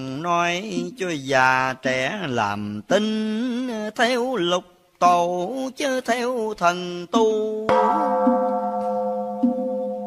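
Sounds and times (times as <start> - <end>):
struck bell ringing: 7.7 - 10.0.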